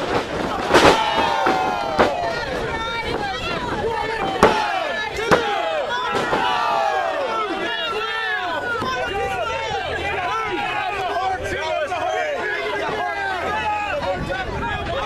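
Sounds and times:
crowd talking and shouting: 0:00.0 - 0:15.0.

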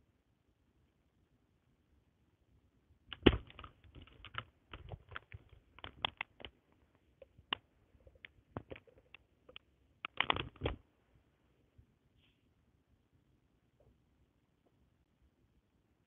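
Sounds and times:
headphones cable clicks and rustles: 0:03.1 - 0:10.9.

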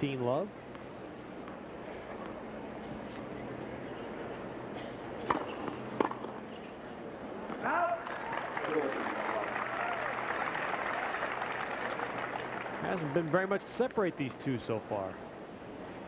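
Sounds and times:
racket striking tennis ball: 0:05.2 - 0:06.4
person shouting: 0:07.6 - 0:08.1
crowd cheering and clapping: 0:07.7 - 0:13.4.

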